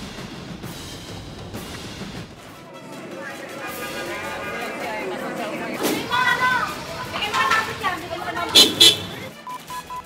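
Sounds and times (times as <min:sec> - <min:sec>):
voices shouting: 0:02.4 - 0:09.4
short even beeps: 0:09.4 - 0:10.0.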